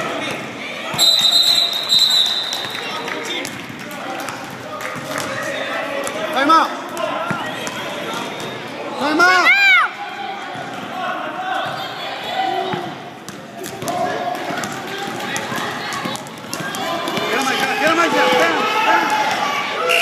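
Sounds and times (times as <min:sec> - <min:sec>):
shouts and chatter: 0:00.0 - 0:20.0.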